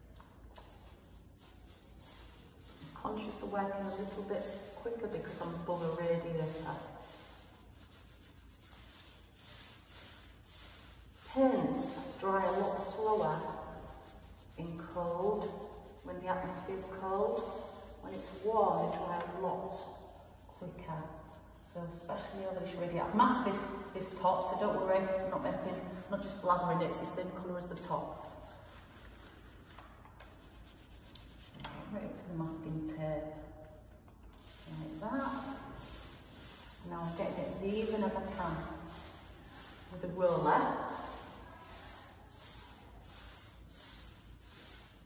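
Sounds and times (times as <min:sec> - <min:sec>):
foam roller rubbing on wall: 0:00.6 - 0:33.3, 0:34.4 - 0:45.0.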